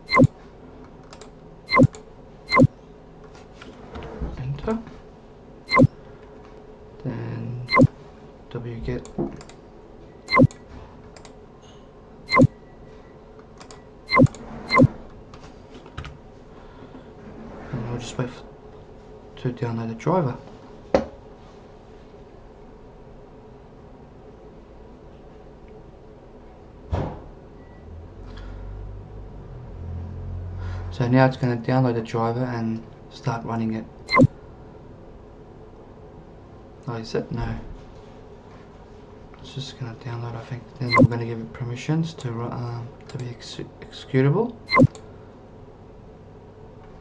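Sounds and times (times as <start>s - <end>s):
mouse clicks: 0.1s - 0.3s, 10.3s - 10.6s, 44.7s - 45.0s
thump: 26.9s - 27.2s.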